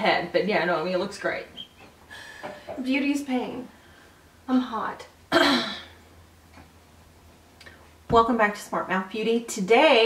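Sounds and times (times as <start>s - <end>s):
woman clearing her throat: 5.3s - 6.0s.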